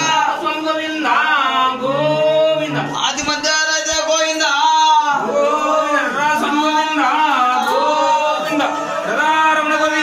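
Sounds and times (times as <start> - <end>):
men singing devotional chant: 0.0 - 10.0.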